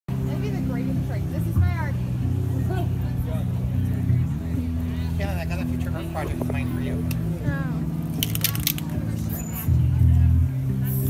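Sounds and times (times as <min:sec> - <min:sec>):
cello and bass music: 0:00.1 - 0:08.2, 0:08.9 - 0:11.0
people talking: 0:00.2 - 0:11.0.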